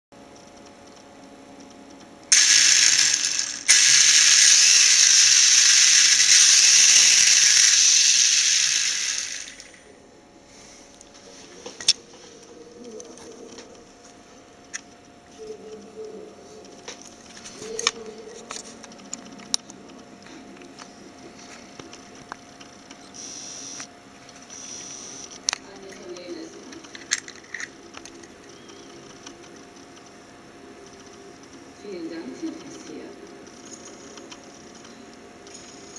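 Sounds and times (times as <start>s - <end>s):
faint steady hum: 0.2s - 35.9s
electric motor gear ratcheting clatter: 2.3s - 9.8s, 26.8s - 28.3s.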